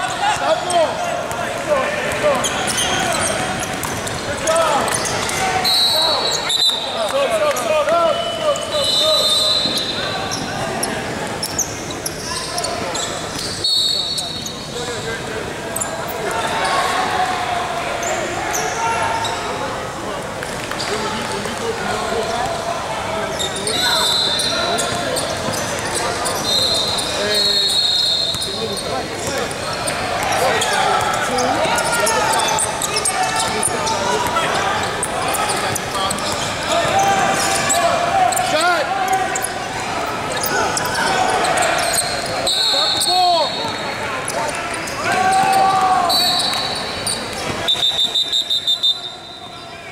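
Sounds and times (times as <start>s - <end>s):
voices echoing in hall: 0.0s - 49.9s.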